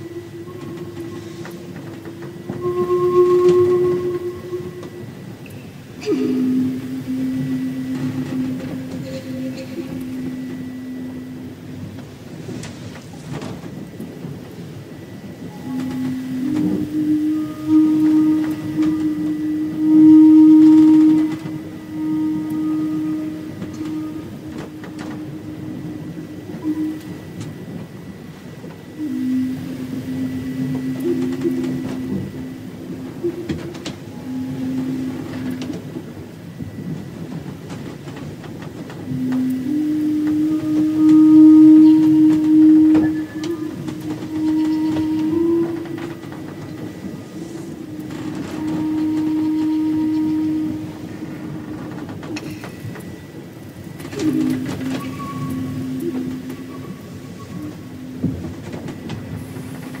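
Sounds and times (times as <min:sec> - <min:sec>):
slow flute melody: 0:00.0 - 1:00.0
steady noisy rumble: 0:00.0 - 1:00.0.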